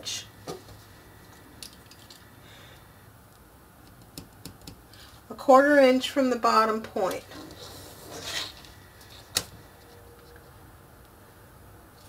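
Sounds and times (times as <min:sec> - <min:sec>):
sliding rustle on cutting mat: 0:07.3 - 0:09.3.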